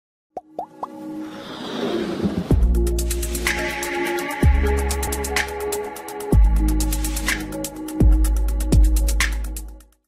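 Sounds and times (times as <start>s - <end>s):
electronic music: 2.5s - 9.8s.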